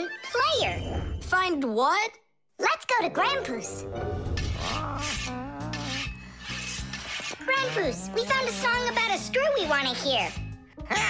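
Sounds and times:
light background music: 3.0 - 11.0
hand file rasping: 4.4 - 10.6.

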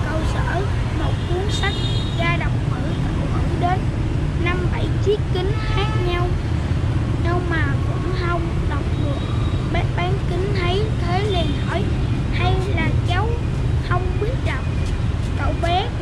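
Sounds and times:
boy reading aloud: 0.0 - 16.0
street traffic rumble: 0.0 - 16.0.

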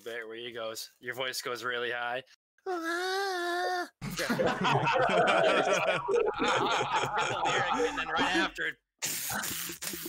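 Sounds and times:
men laughing: 4.0 - 8.6.

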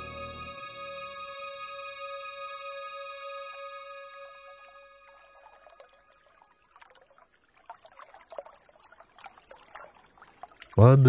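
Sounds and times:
music: 0.0 - 6.4
trickling water with drips: 5.1 - 10.8.

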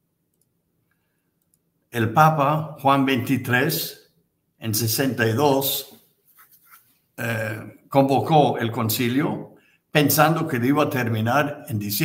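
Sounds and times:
faint clicks: 0.3 - 1.7
man talking: 2.0 - 4.0, 4.6 - 6.0, 7.2 - 12.0.

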